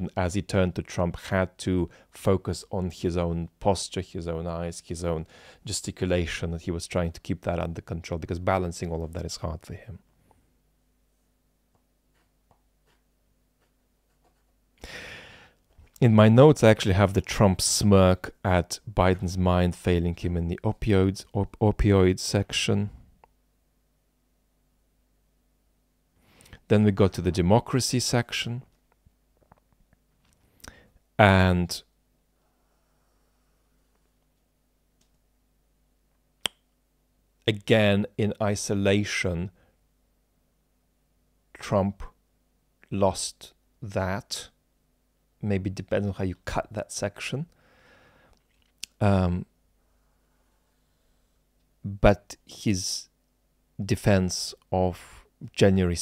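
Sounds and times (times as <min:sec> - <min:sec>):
faint low hum: 0:00.0 - 0:56.0.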